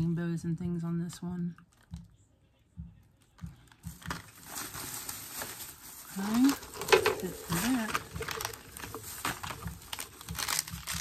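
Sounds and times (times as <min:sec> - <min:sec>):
plastic bag rustling: 0:03.6 - 0:11.0.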